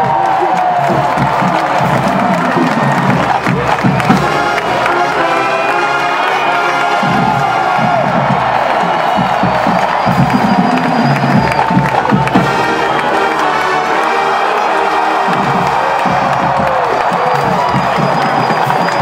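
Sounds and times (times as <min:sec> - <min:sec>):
crowd cheering and yelling: 0:00.0 - 0:19.0
marching band brass playing: 0:00.0 - 0:19.0.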